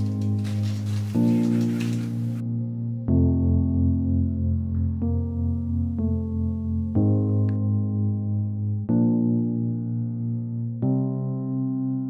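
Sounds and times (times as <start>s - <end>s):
slow sustained music chords: 0.0s - 12.0s.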